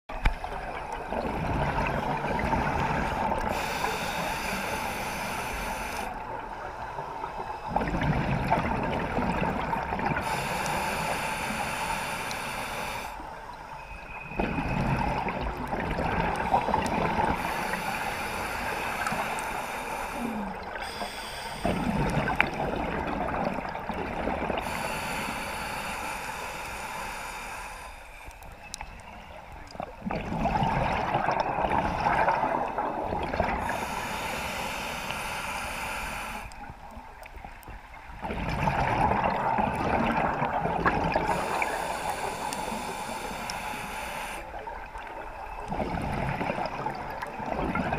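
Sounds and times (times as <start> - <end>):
rushing exhaled bubbles underwater: 0.3 - 3.7, 7.6 - 10.8, 14.3 - 17.8, 21.6 - 24.8, 29.8 - 34.0, 38.1 - 43.3, 44.6 - 47.9
hiss of inhaling through regulator: 2.7 - 7.9, 10.1 - 13.8, 16.4 - 22.4, 24.6 - 28.8, 33.6 - 36.9, 41.2 - 44.6.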